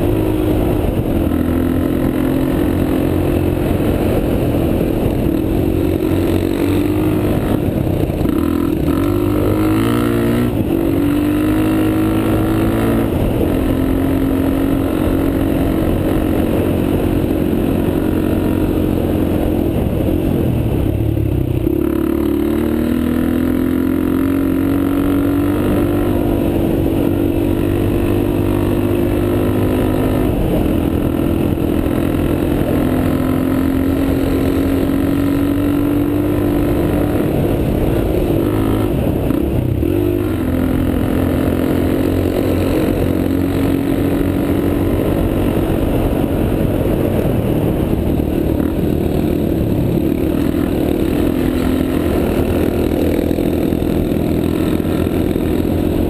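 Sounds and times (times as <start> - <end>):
dirt bike engine: 0.0 - 56.0.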